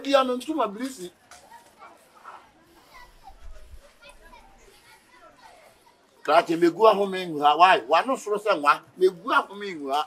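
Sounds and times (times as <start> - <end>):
distant children chattering: 0.0 - 7.5.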